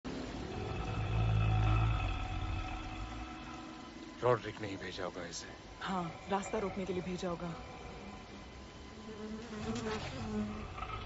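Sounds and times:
low rumbling drone: 0:00.0 - 0:09.4.

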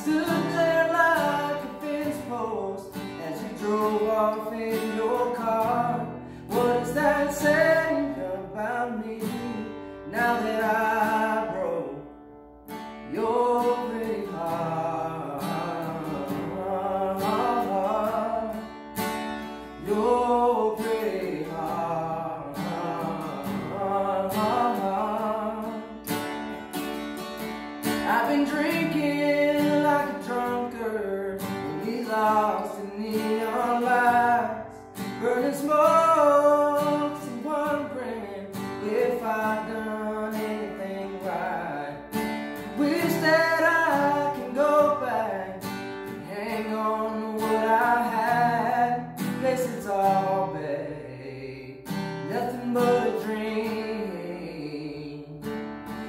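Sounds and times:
acoustic guitar strumming: 0:00.0 - 0:56.0
man singing country song: 0:00.0 - 0:56.0.

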